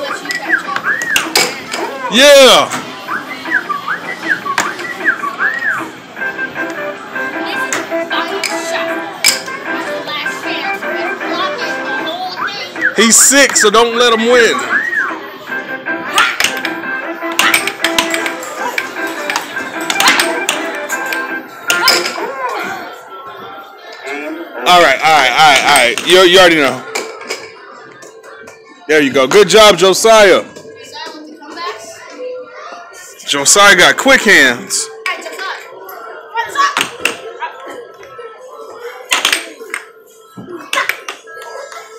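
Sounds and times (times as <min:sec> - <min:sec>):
background chatter: 0:00.0 - 0:41.9
arcade machine music: 0:02.0 - 0:30.8
air hockey puck clacking: 0:04.5 - 0:05.2, 0:16.1 - 0:22.2, 0:39.1 - 0:39.9.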